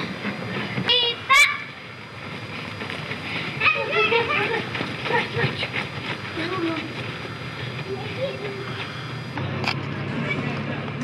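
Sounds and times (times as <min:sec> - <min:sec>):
steady background hiss: 0:00.0 - 0:10.7
children calling out: 0:00.8 - 0:09.4.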